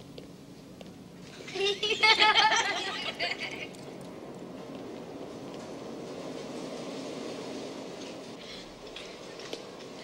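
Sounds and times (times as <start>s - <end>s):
subway train rumble: 0.0s - 10.0s.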